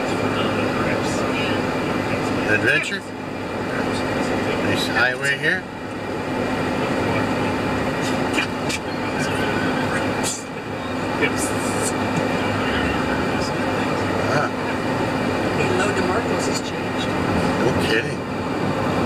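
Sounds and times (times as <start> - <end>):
road and engine noise in car: 0.0 - 19.0.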